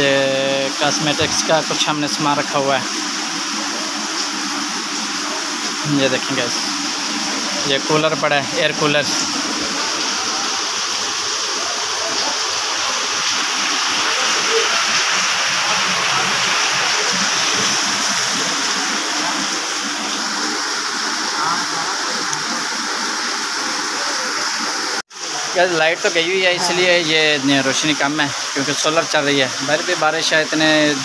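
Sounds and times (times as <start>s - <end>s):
torrential rain pouring: 0.0s - 31.0s.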